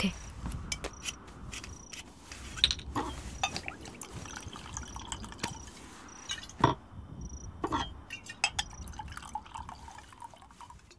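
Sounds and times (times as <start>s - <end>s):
wine trickling into a glass: 3.5s - 6.6s, 8.2s - 10.9s
glass clinks: 6.2s - 6.8s, 7.6s - 9.6s.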